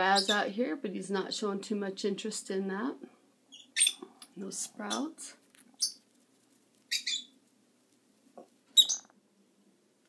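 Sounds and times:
lovebirds chirping: 0.0s - 0.6s, 3.4s - 6.1s, 6.8s - 7.4s, 8.4s - 9.2s.

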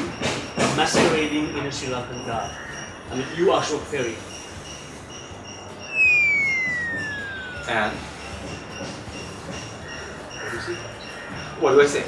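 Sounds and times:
insects chirping: 1.5s - 8.7s
high whistle falling in pitch: 5.9s - 8.7s.

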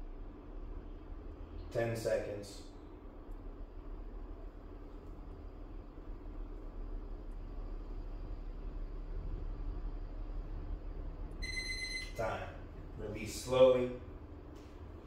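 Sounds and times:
low room hum: 0.0s - 15.0s
phone timer alarm tone: 11.4s - 12.2s.

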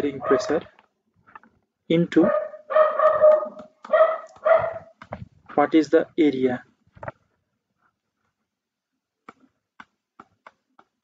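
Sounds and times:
animal calls: 2.2s - 5.0s.

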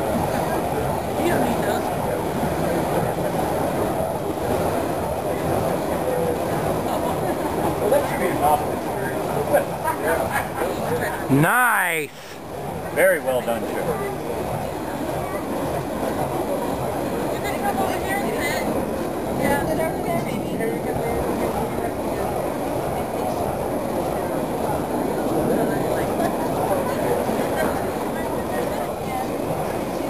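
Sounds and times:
people talking low: 0.0s - 30.0s
steady noisy rumble: 0.0s - 30.0s.

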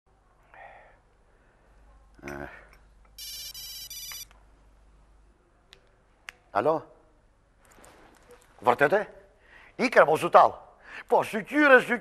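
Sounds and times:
mobile phone ringtone: 3.2s - 4.2s.

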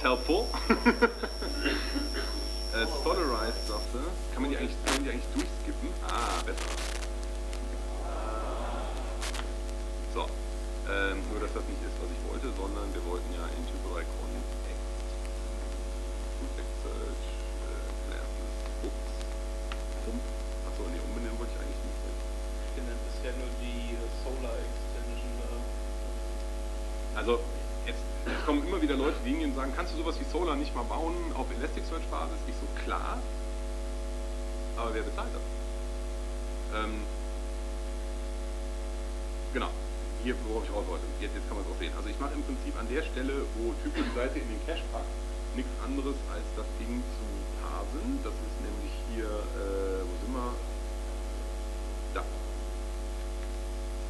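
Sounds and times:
electrical mains hum: 0.0s - 54.0s
person laughing: 0.6s - 2.4s, 43.7s - 44.4s
faint murmuring: 1.1s - 6.8s, 7.6s - 15.3s, 16.4s - 25.7s, 27.2s - 33.1s, 39.6s - 50.6s
low voices murmuring: 7.6s - 9.5s, 10.9s - 14.8s.

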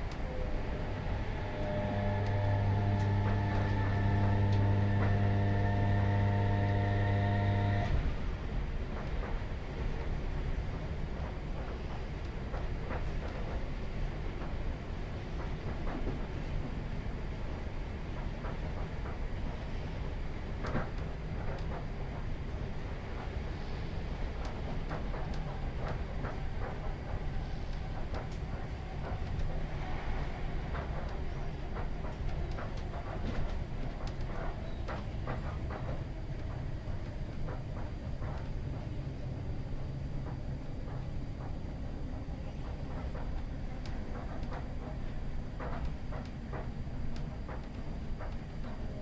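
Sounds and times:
train wheels rumbling on track: 0.0s - 49.0s.

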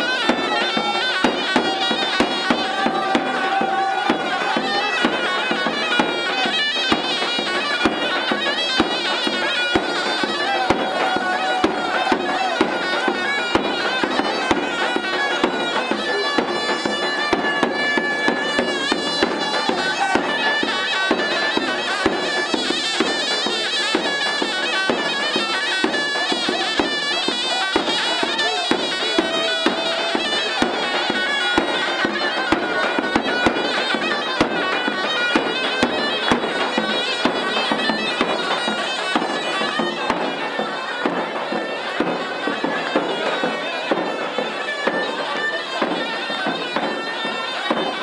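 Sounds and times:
deep drum beats: 0.0s - 22.3s
reedy wind instrument melody: 0.0s - 48.0s.

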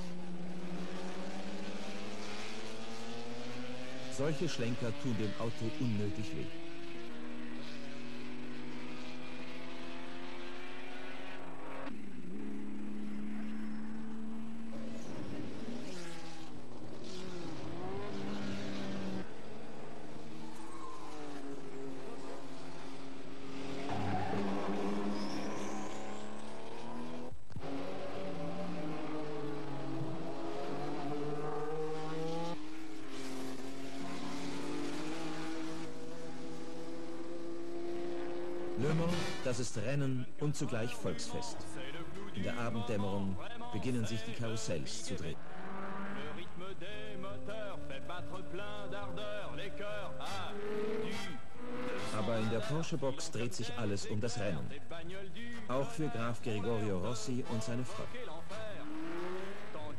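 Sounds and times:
racing car engines passing: 0.0s - 59.9s.

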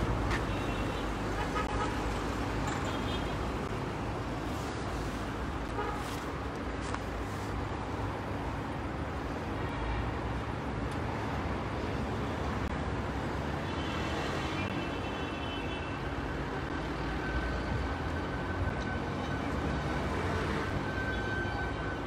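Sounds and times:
city street traffic rumble: 0.0s - 22.0s.

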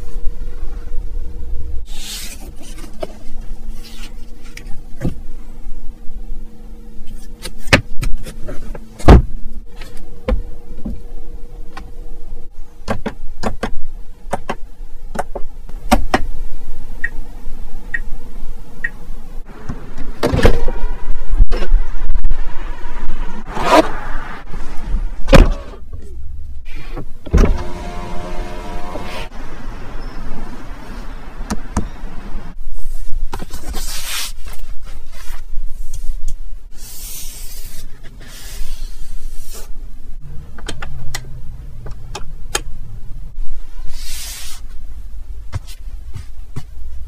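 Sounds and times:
faint steady hum: 0.0s - 20.2s
electric window motor running: 27.3s - 29.3s.

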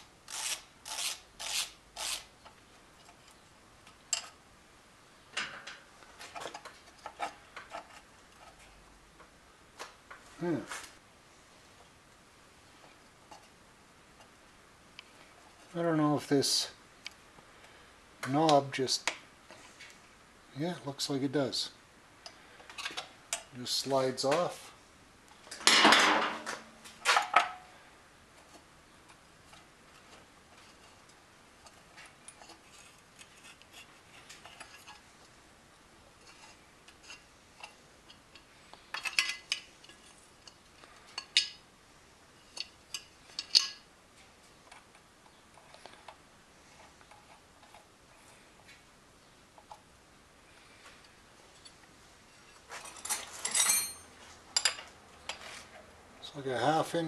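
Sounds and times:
metallic clinks and knocks: 52.7s - 54.9s
ringing clinks: 53.0s - 54.1s.

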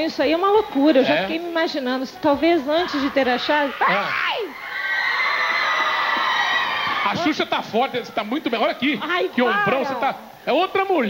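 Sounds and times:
audience cheering and shrieking: 2.6s - 10.0s.

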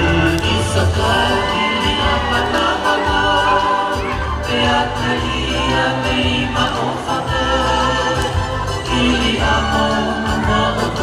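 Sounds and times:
steady bass accompaniment: 0.0s - 11.0s
voices singing in chorus: 0.0s - 11.0s.

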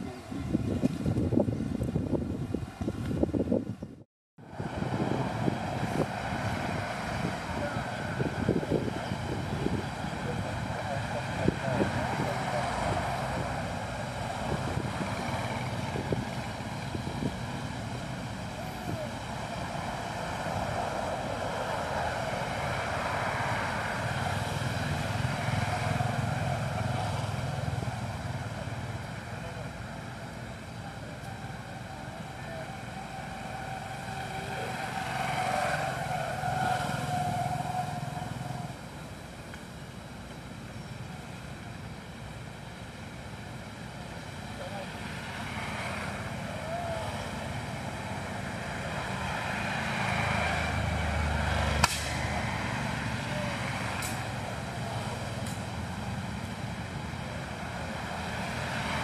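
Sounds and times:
low engine-like rumble: 0.0s - 49.4s
faint voices: 7.2s - 16.6s, 18.4s - 19.6s, 26.0s - 38.5s
sharp click: 51.8s - 52.1s.

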